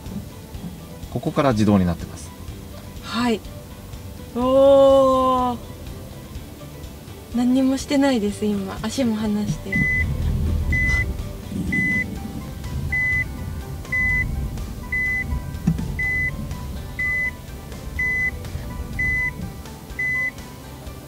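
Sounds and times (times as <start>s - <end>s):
car parking beeps: 9.5s - 12.2s, 12.9s - 20.5s.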